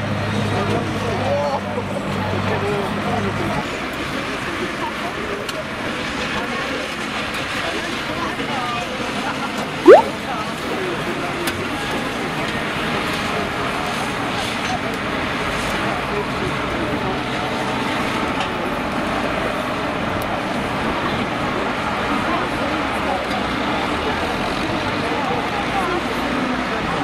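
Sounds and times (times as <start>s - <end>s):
many voices: 13.3s - 27.0s.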